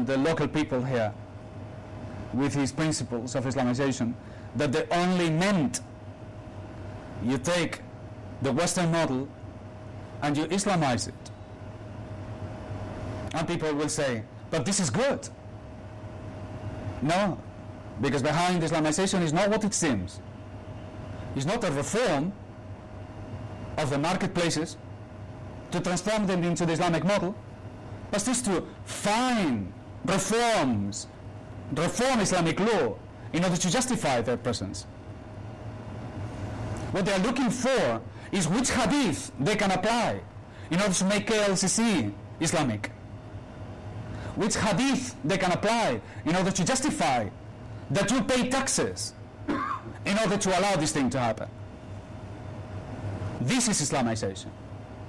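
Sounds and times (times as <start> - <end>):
man speaking: 0.0 - 1.2, 2.3 - 5.9, 7.2 - 9.3, 10.2 - 11.3, 13.3 - 15.4, 17.0 - 17.4, 18.0 - 20.2, 21.3 - 22.4, 23.8 - 24.8, 25.7 - 27.4, 28.1 - 31.1, 31.7 - 34.9, 36.9 - 43.0, 44.3 - 49.2, 49.9 - 51.5, 53.4 - 54.5
faint hum: 0.0 - 55.0.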